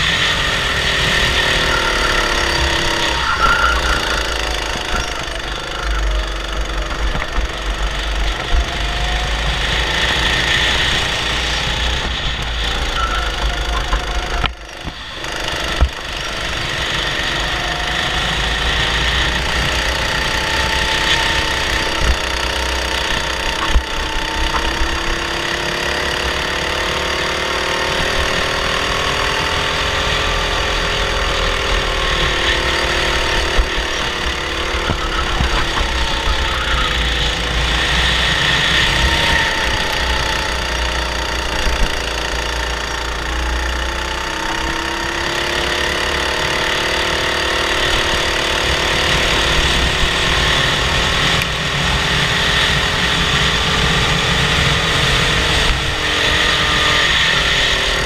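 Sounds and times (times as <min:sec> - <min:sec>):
kart engine running hard: 0:00.0 - 0:58.0.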